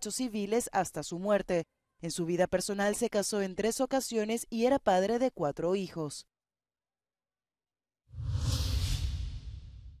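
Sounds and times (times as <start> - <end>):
whoosh: 8.1 - 10.0.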